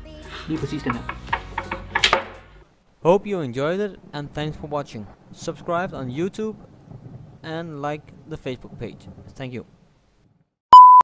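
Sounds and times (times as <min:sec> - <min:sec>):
plastic clicks and knocks on table: 0:00.9 - 0:02.4.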